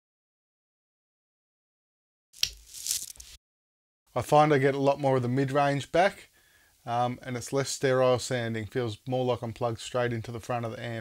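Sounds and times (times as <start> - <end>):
scratchy crackle and hiss: 2.4 - 3.4.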